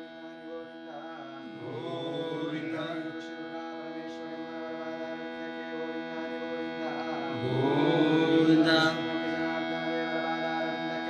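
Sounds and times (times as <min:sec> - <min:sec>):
mantra chanting: 0:00.0 - 0:11.0
steady drone: 0:00.0 - 0:11.0.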